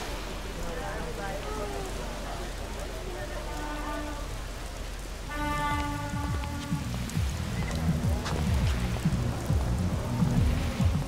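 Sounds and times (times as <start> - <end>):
rain on wet pavement: 0.0 - 11.0
low pulsing beat: 5.7 - 11.0.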